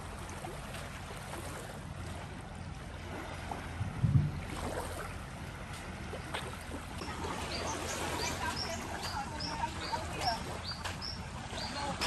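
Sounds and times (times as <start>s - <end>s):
low background rumble: 1.8s - 7.7s
small birds chirping: 6.1s - 12.0s.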